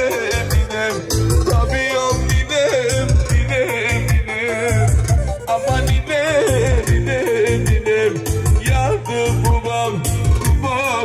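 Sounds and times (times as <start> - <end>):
drum and bass beat: 0.0 - 11.0
live band playing dance music: 0.0 - 11.0
vibrato melody line: 0.0 - 11.0.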